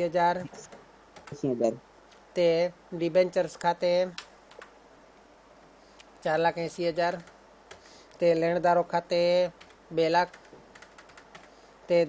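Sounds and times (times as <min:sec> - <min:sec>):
person speaking: 0:00.0 - 0:04.3, 0:06.0 - 0:07.4, 0:08.1 - 0:10.5
computer keyboard clicks: 0:09.6 - 0:11.5.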